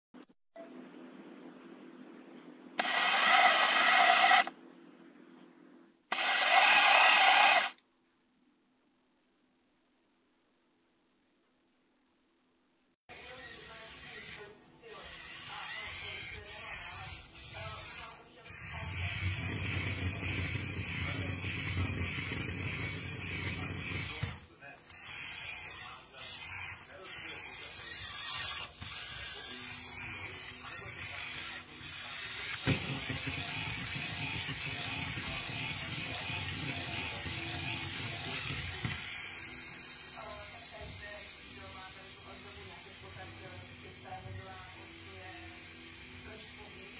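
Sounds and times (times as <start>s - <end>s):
robot drive motors whirring: 2.8s - 4.5s, 6.1s - 7.8s, 13.1s - 46.9s
faint steady hum: 7.8s - 13.0s.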